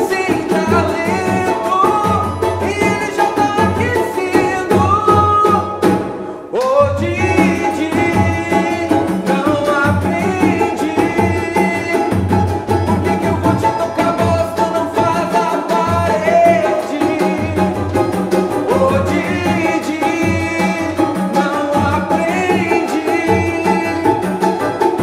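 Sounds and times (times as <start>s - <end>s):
cavaquinho and banjo: 0.0s - 25.0s
hand percussion: 0.0s - 25.0s
men singing: 0.0s - 25.0s.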